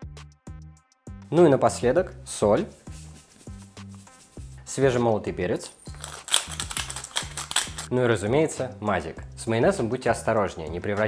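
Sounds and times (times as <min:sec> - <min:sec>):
pepper mill grinding clicks: 0:05.9 - 0:07.9.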